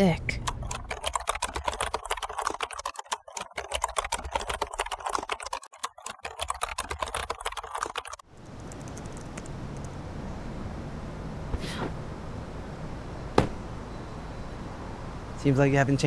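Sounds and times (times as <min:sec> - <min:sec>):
typing on computer keyboard: 0:00.3 - 0:09.5.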